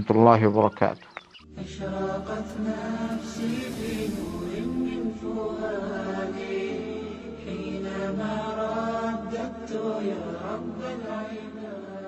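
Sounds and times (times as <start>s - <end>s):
low drone: 1.5s - 9.6s.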